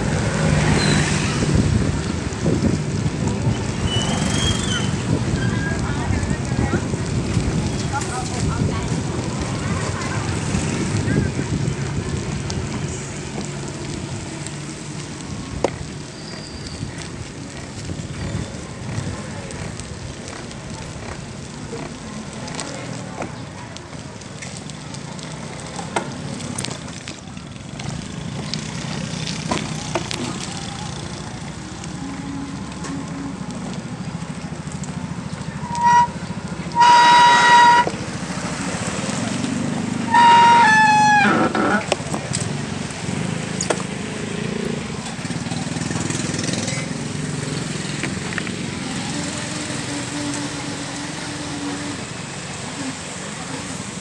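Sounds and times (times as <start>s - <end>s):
low rumble of road noise: 0.0s - 54.0s
horn honking: 35.6s - 38.0s, 40.1s - 41.6s.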